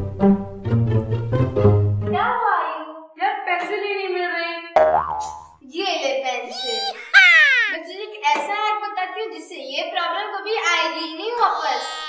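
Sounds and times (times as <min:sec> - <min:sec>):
comedy boing sound effect: 0:04.8 - 0:05.6
held voice-like tone: 0:06.5 - 0:07.8
voices: 0:06.5 - 0:07.8.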